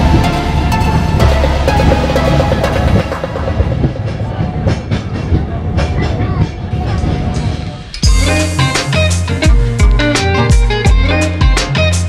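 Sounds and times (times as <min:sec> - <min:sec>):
electronic music: 0:00.0 - 0:05.8, 0:08.0 - 0:12.0
wheels clattering on rails: 0:00.0 - 0:08.0
passenger chatter: 0:00.0 - 0:09.2.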